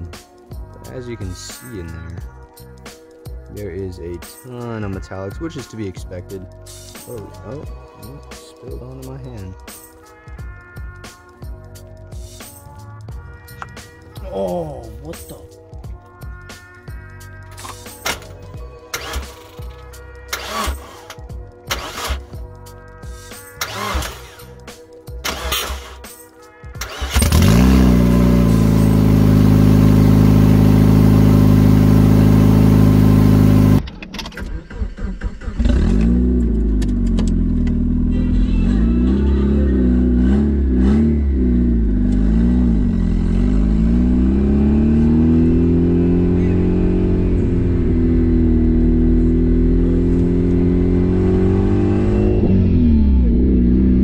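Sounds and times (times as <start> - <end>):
car engine revving: 18.9 - 22.4, 23.5 - 26.1, 26.8 - 33.8, 34.6 - 54.0.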